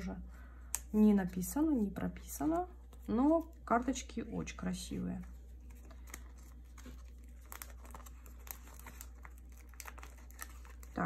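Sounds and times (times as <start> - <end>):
plastic sleeves crinkling: 4.7 - 11.0.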